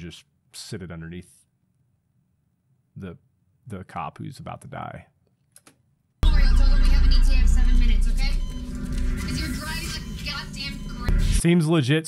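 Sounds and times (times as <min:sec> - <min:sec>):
voices: 0:06.2 - 0:08.6
film soundtrack music: 0:06.2 - 0:11.4
heavy low rumble: 0:06.2 - 0:11.4.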